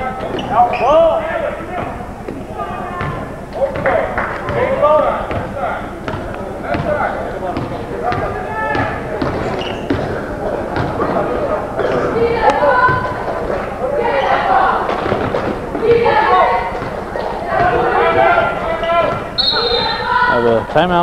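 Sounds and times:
people calling out: 0:00.0 - 0:20.7.

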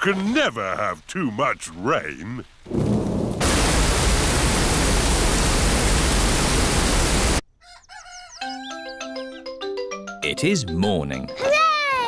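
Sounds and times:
cartoon heavy rain hiss: 0:00.2 - 0:07.4.

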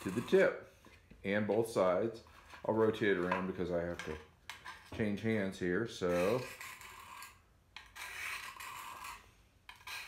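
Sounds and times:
knife scraping on sharpening stone: 0:00.0 - 0:00.4, 0:06.0 - 0:10.0.

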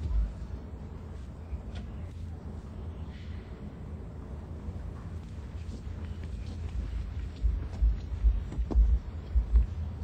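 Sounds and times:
low dull thumps: 0:07.3 - 0:10.0.

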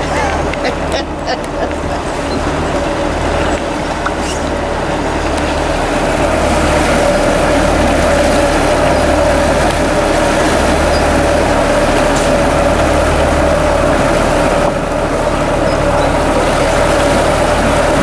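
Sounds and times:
boat engine idling: 0:00.0 - 0:18.0
water rushing and churning: 0:00.0 - 0:18.0.

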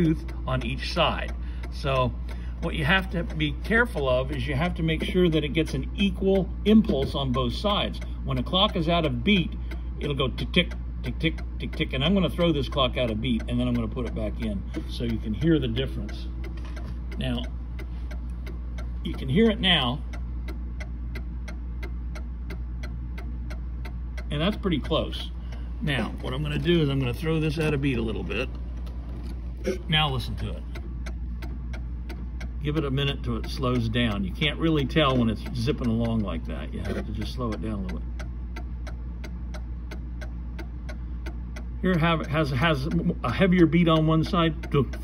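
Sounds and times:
clock ticking quickly: 0:00.0 - 0:45.0
steady low hum: 0:00.0 - 0:45.0.

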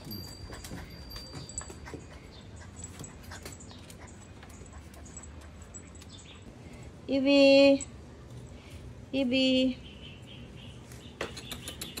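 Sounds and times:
puppy sounds: 0:00.0 - 0:06.6.

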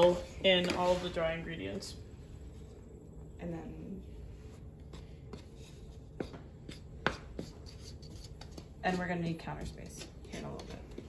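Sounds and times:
hands rubbing flour: 0:04.4 - 0:11.0
wooden spoon scraping flour in bowl: 0:04.9 - 0:11.0.

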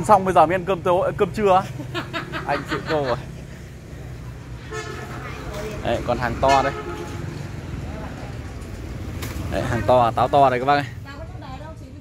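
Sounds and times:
vehicle horn toot: 0:04.7 - 0:05.2, 0:06.3 - 0:07.4.

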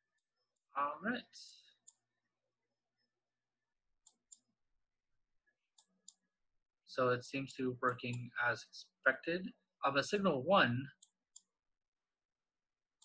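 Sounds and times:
computer mouse clicks: 0:04.0 - 0:04.5, 0:05.8 - 0:06.2, 0:11.0 - 0:11.5.

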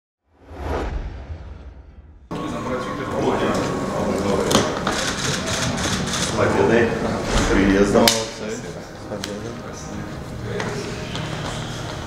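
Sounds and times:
whoosh over deep rumble: 0:00.3 - 0:02.3.

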